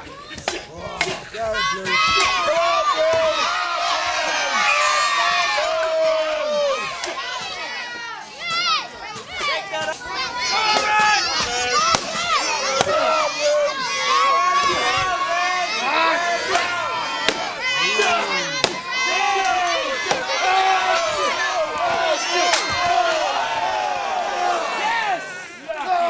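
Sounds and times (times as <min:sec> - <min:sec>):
crowd shouting and cheering: 0:00.0 - 0:26.0
weapons striking: 0:10.7 - 0:13.1, 0:16.5 - 0:18.9.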